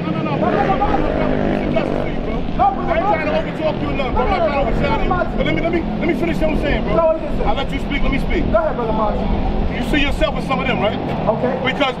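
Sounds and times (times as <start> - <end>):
men arguing: 0.0 - 12.0
vehicle engine humming: 0.0 - 12.0.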